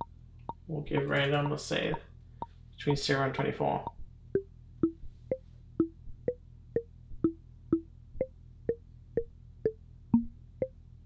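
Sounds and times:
synth percussion struck notes: 4.4 - 6.4.

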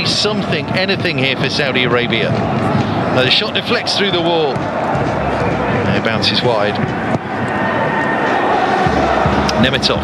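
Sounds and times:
stadium crowd hubbub: 0.0 - 10.0.

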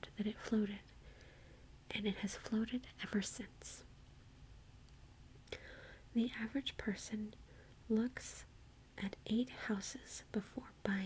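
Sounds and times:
faint room hum and hiss: 0.0 - 11.0.

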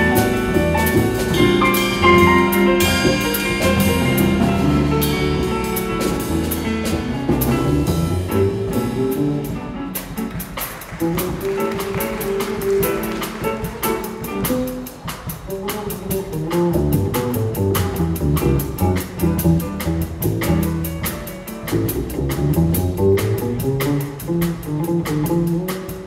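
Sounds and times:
piano accompaniment: 0.0 - 26.0
plucked double bass: 0.0 - 26.0.

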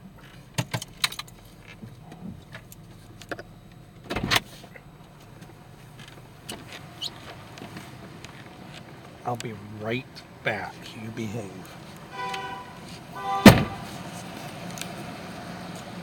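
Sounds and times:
car engine humming: 0.0 - 16.0
loud thump: 13.3 - 13.9.

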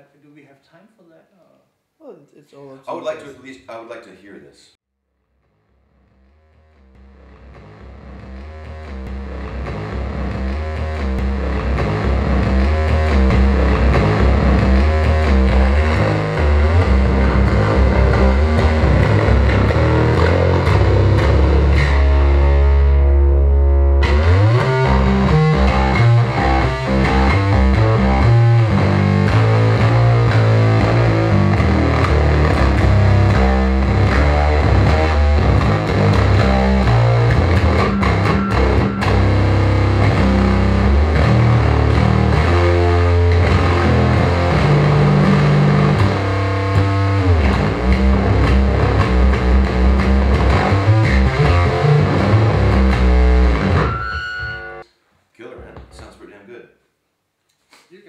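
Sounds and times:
distorted electric bass riffing: 5.4 - 54.8.

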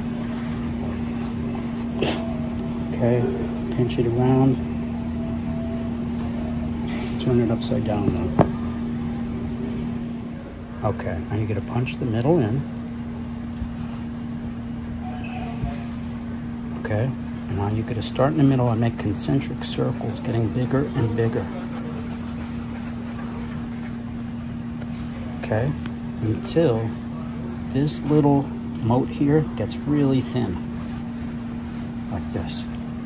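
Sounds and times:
machine hum: 0.0 - 33.0.

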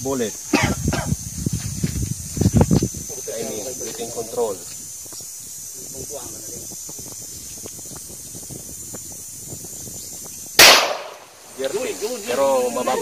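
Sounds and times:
handgun shot with echo: 10.6 - 11.2.

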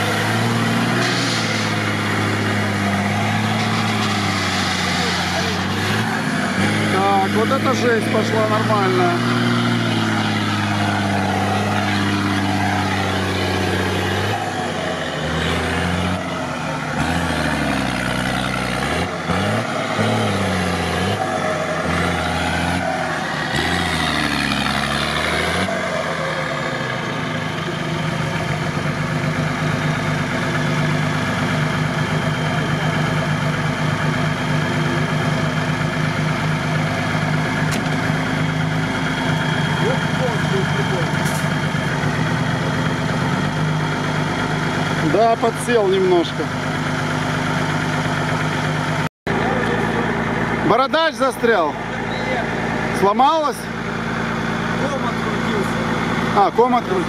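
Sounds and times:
diesel engine revving under load: 0.0 - 57.0.

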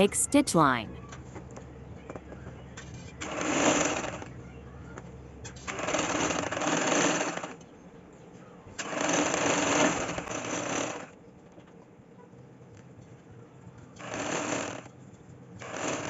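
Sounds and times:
sewing machine stitching: 3.2 - 4.3, 5.6 - 7.6, 8.8 - 11.2, 14.0 - 14.9, 15.6 - 16.0.

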